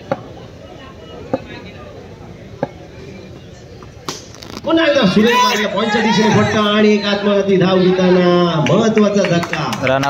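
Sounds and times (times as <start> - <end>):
murmur of distant crowd voices: 0.0 - 10.0.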